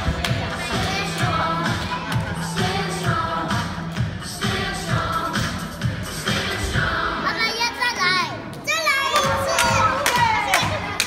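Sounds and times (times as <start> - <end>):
music with steady beat: 0.0 - 7.2
children singing and shouting: 0.0 - 11.0.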